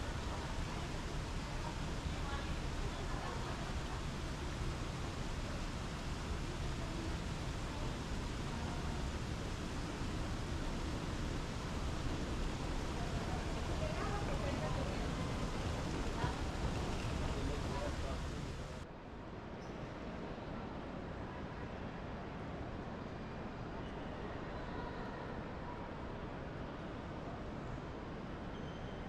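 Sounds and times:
steady low rumble: 0.0s - 18.8s
faint indistinct voices: 0.0s - 29.0s.

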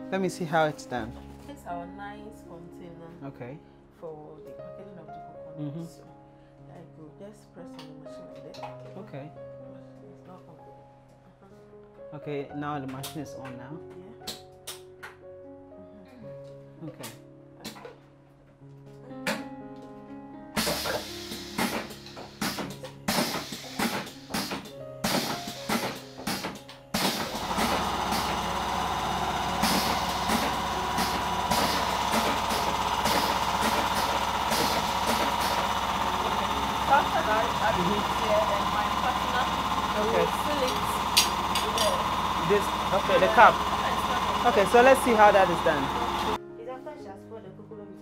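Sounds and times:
filling machine humming and whining: 20.6s - 46.4s.

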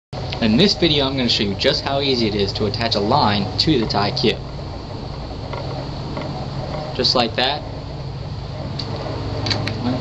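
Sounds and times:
low background hum: 0.2s - 10.0s.

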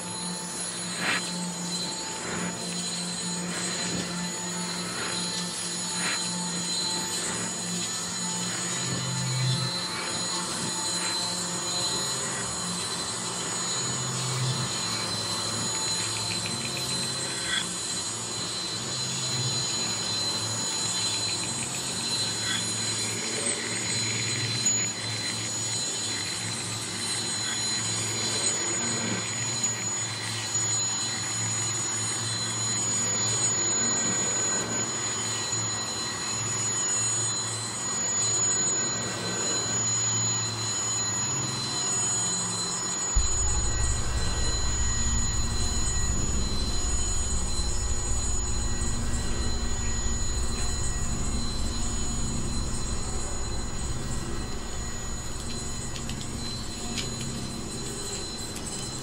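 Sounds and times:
high-pitched machine whine: 0.0s - 59.0s
deep steady hum: 43.1s - 59.0s
scattered clicks: 55.4s - 59.0s.

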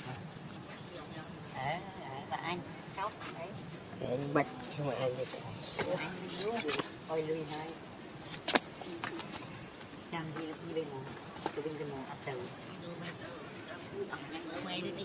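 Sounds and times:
people talking: 10.1s - 15.0s.

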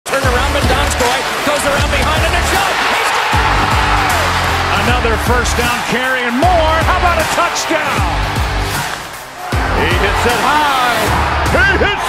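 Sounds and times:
music with heavy bass beat: 0.2s - 5.8s, 8.0s - 11.8s.

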